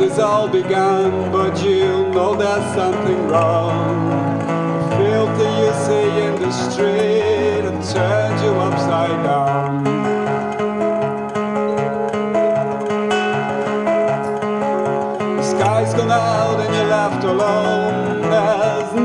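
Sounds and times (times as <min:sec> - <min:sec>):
acoustic guitar: 0:00.0 - 0:19.0
electric keyboard: 0:00.0 - 0:19.0.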